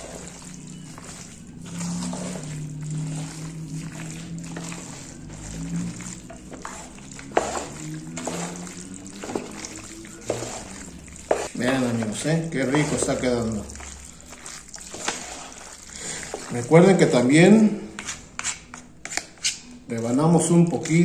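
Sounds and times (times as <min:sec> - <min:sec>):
background music low held notes: 0:00.0 - 0:18.0
wet squelching stirring: 0:00.0 - 0:21.0.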